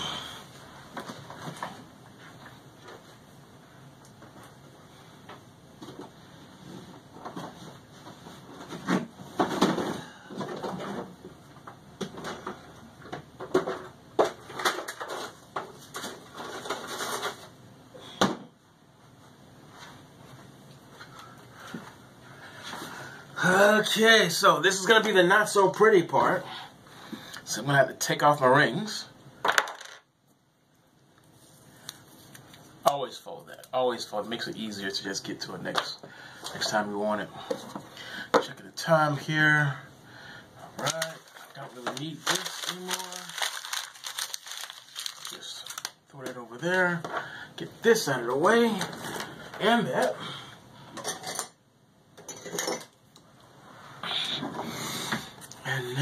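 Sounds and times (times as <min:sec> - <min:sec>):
rustling objects on desk: 0:40.8 - 0:46.0.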